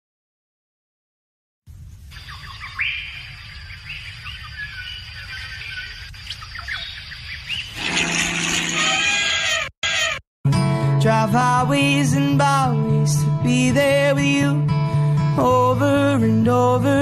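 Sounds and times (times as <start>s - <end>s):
birds chirping: 2.0s - 10.2s.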